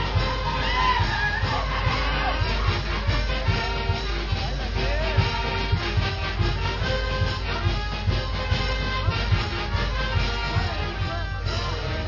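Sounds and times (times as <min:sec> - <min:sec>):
band music with steady beat: 0:00.0 - 0:12.0.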